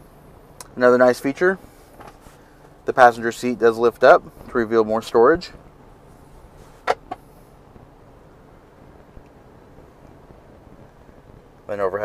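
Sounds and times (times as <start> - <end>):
seat cushion shutting knock: 6.7 - 7.3.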